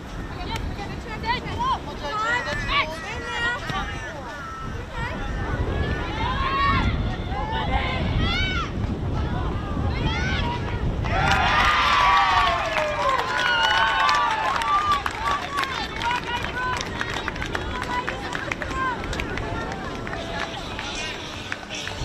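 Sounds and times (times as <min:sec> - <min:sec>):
women shouting and cheering: 0:01.1 - 0:20.9.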